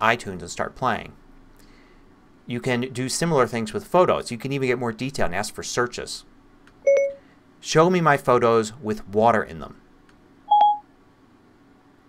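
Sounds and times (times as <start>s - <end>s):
short electronic beep: 6.9s - 7.2s, 10.5s - 10.8s.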